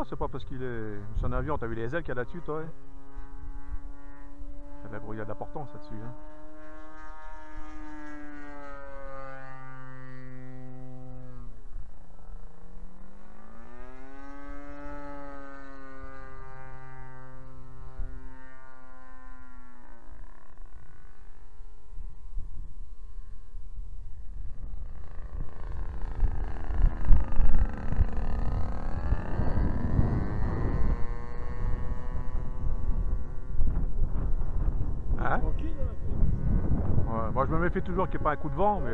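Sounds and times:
model aircraft engine drone: 0.0s - 38.9s
wind rumbling on microphone: 0.0s - 38.9s.

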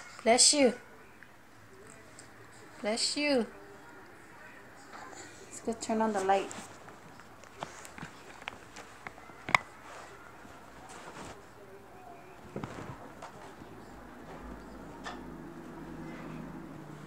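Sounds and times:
faint low hum: 0.0s - 17.0s
rustling on fleece blanket: 6.0s - 11.7s, 12.4s - 14.5s.

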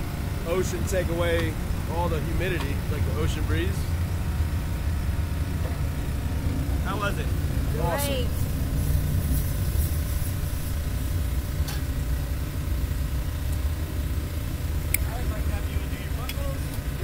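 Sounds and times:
faint steady hum: 0.0s - 17.0s
low rumble: 0.0s - 17.0s
faint voices: 6.8s - 8.6s.

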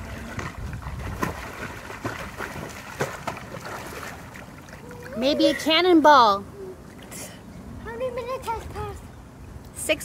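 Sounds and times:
sharp splashes: 0.0s - 5.2s
water churning and sloshing: 0.0s - 9.6s.

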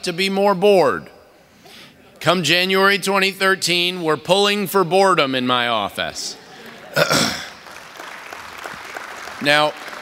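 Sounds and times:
audience laughing: 6.3s - 7.6s
light scattered clapping: 7.5s - 10.0s.

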